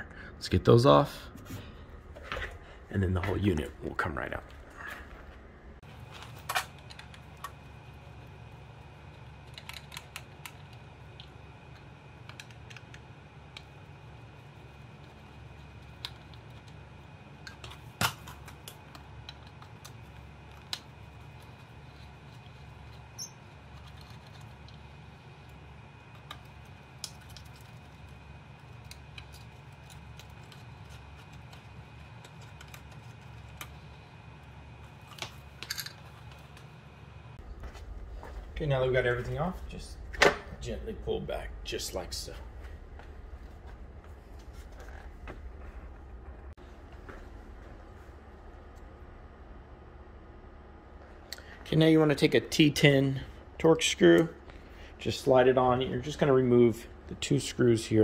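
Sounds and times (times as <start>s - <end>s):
low hum: 0.0s - 58.0s.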